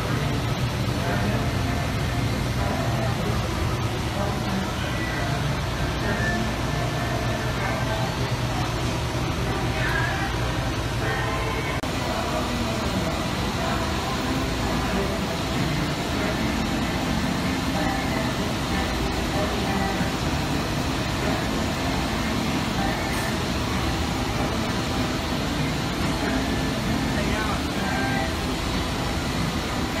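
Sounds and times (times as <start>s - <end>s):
industrial machine hum and hiss: 0.0s - 30.0s.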